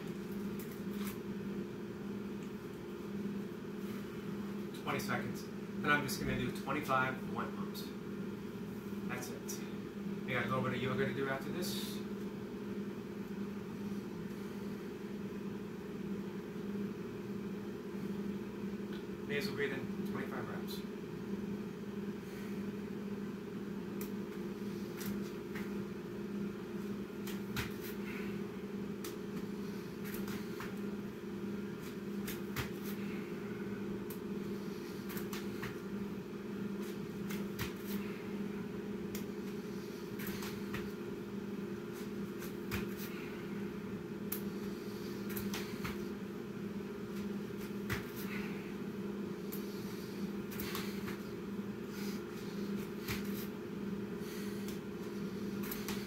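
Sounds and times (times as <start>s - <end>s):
low two-pitch machine hum: 0.0s - 56.0s
hands and feet landing on mat: 27.2s - 28.3s, 31.8s - 33.1s, 36.8s - 38.1s, 40.2s - 41.0s, 42.0s - 43.3s, 45.2s - 46.2s, 47.1s - 48.5s, 52.5s - 53.5s.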